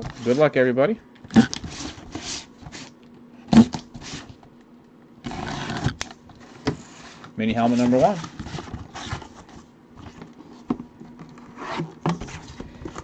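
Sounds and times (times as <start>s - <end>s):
cardboard scraping and rustling: 0.0s - 0.5s, 1.3s - 2.9s, 3.6s - 4.4s, 5.2s - 13.0s.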